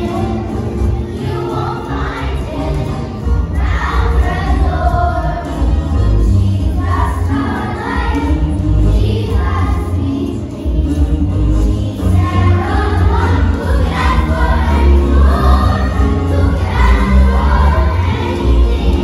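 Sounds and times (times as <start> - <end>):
children singing together: 0.0 - 19.0
recorded accompaniment with bass: 0.0 - 19.0.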